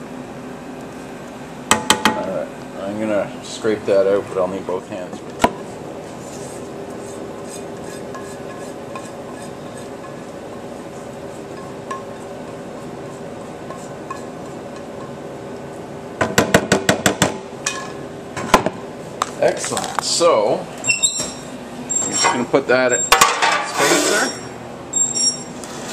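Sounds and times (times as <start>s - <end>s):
steady hum: 0.0s - 25.9s
sharp metal knocks on pans: 1.7s - 2.2s, 16.2s - 17.9s
utensil scraping metal pan: 6.4s - 10.3s.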